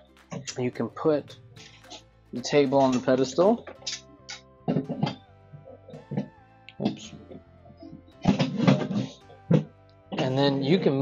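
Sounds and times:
soft guitar music: 0.0 - 11.0.

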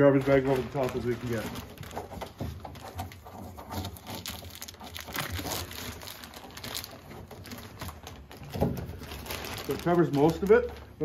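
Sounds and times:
plastic bag rustling and crackling: 0.0 - 11.0.

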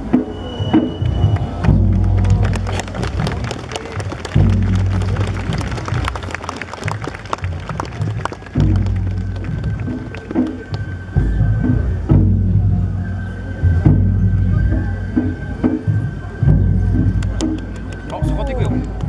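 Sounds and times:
festival float music: 0.0 - 19.0.

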